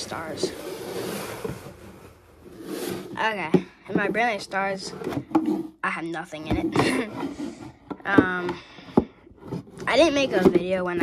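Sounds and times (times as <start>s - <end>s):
cardboard box scraping on wood: 0.0s - 5.8s.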